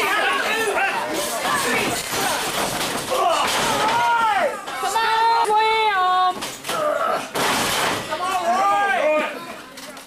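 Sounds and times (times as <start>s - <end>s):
crowd shouting: 0.0s - 5.7s.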